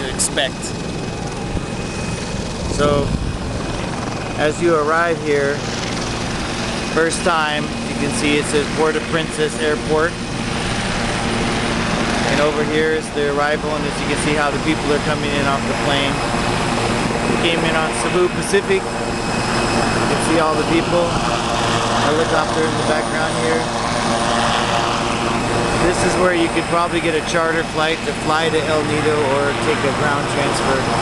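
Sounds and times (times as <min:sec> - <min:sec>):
aircraft engine droning: 0:00.0 - 0:31.0.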